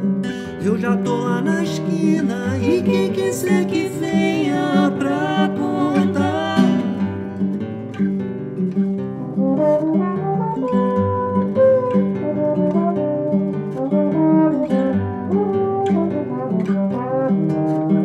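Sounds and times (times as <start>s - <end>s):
acoustic guitar plucking: 0.0s - 18.0s
trombone playing melody: 9.3s - 18.0s.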